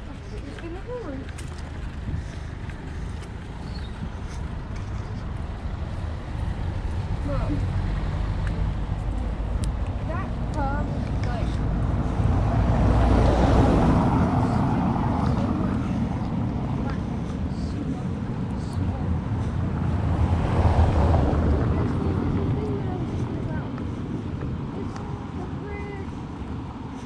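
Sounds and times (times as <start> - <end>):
wind rumbling on microphone: 0.0 - 27.0.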